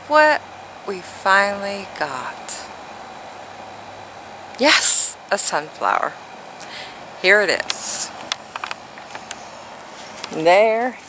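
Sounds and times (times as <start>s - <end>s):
steady hiss: 0.0s - 11.0s
phone handling clicks and taps: 7.6s - 9.4s.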